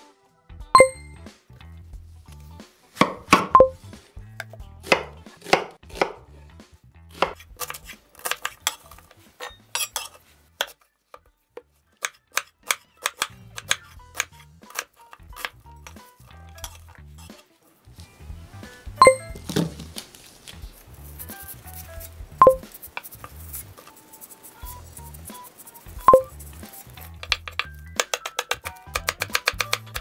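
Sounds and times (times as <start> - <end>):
knife cutting onion on wooden board: 3.0 - 6.3, 7.1 - 17.4, 19.3 - 30.0.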